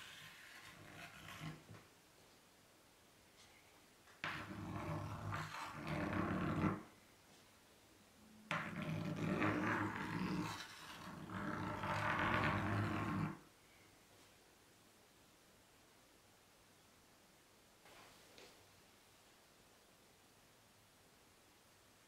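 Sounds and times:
chalk scraping on blackboard: 0.0s - 1.8s, 4.2s - 6.9s, 8.5s - 13.4s.

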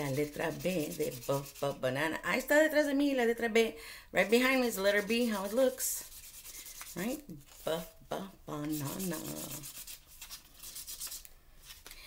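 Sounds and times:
marker scribbling on paper: 0.0s - 1.8s, 4.5s - 7.9s, 8.6s - 11.2s.

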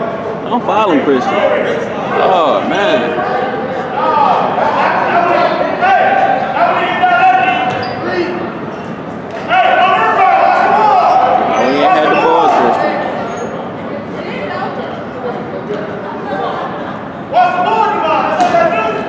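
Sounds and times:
voices calling out: 0.7s - 13.6s.

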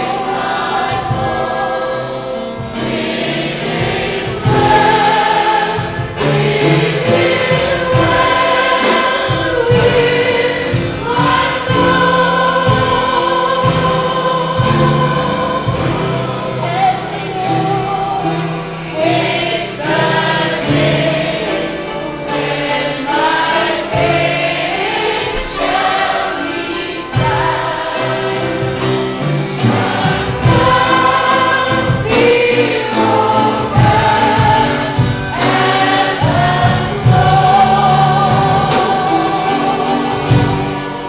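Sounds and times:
live band with drums: 0.0s - 41.0s
woman singing a hymn: 7.1s - 20.9s, 30.4s - 40.8s.

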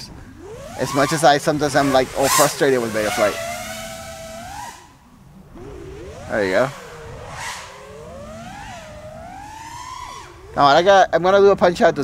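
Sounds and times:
drone motors whining: 0.0s - 11.6s.

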